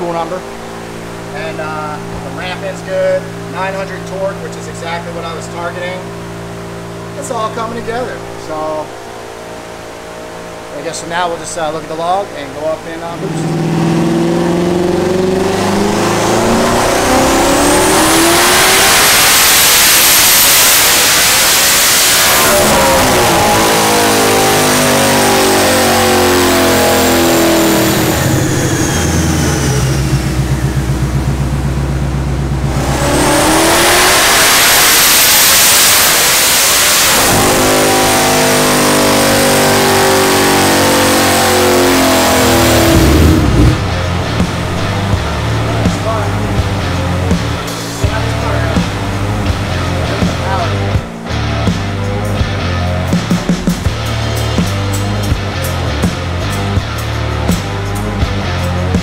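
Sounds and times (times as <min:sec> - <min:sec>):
engine revving on dyno: 0:12.9 - 0:59.0
high rising turbo whistle: 0:13.3 - 0:39.0.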